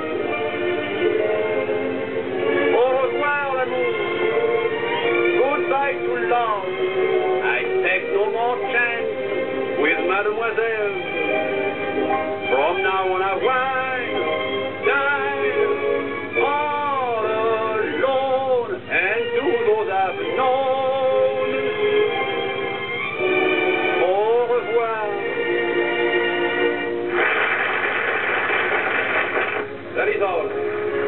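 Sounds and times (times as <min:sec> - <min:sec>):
film soundtrack hiss: 0:00.0 - 0:31.0
musical accompaniment: 0:00.0 - 0:31.0.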